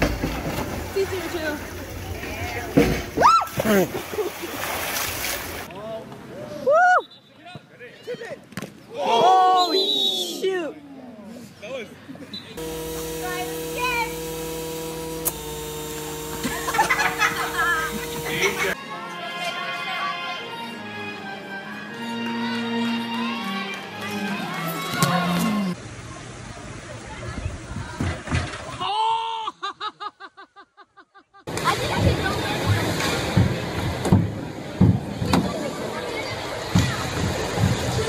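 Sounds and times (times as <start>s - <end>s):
splash into swimming pool: 3.1s - 5.7s.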